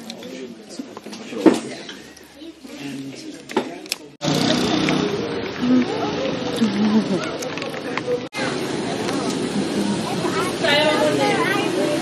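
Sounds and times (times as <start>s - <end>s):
faint voices: 0.0s - 12.0s
street traffic: 0.0s - 12.0s
people talking: 4.9s - 12.0s.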